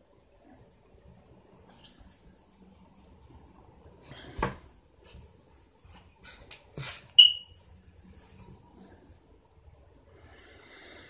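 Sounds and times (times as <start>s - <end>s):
short electronic beep: 7.2s - 7.6s.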